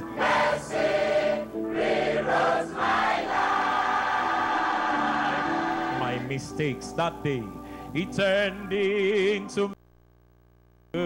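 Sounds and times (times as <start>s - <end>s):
gospel choir singing: 0.0s - 6.4s.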